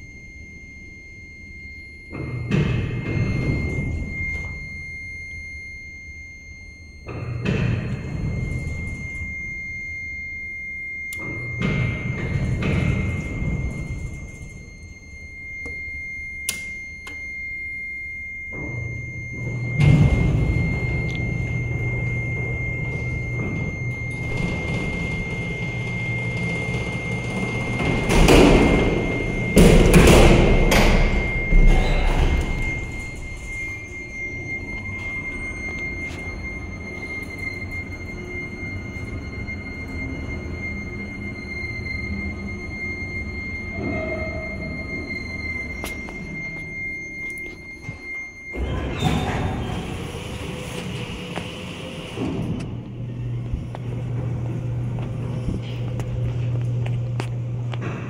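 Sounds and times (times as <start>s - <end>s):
elevator machinery rumble: 0.0s - 58.0s
low electric hum: 0.0s - 58.0s
steady high whine: 0.0s - 58.0s.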